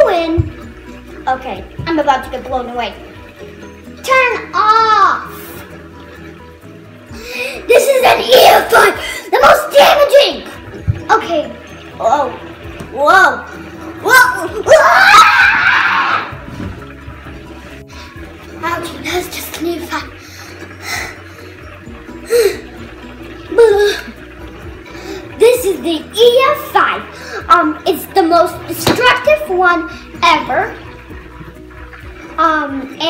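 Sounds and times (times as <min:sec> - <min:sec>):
quiet background music: 0:00.0 - 0:33.0
child crying out: 0:14.6 - 0:16.3, 0:23.5 - 0:24.1.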